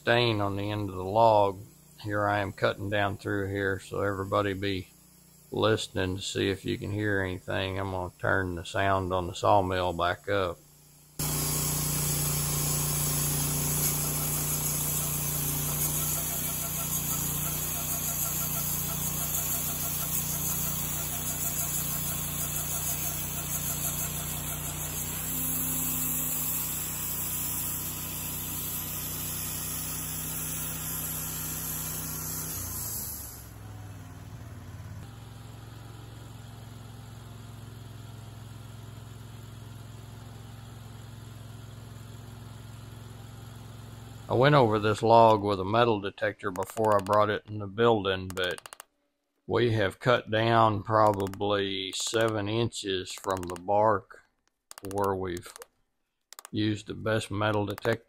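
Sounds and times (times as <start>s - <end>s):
band saw blade cutting wood: 11.2s - 33.6s, 46.5s - 47.3s, 51.0s - 52.4s, 53.1s - 53.7s
sawmill engine running: 11.2s - 37.6s.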